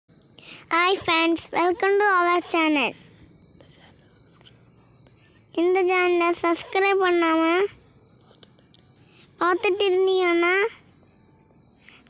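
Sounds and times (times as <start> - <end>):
faint background noise: 0.1 - 12.0.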